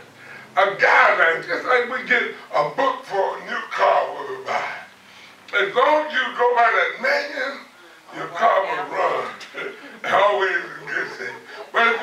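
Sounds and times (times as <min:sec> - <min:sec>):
man preaching: 0:00.5 - 0:04.9, 0:05.5 - 0:12.0.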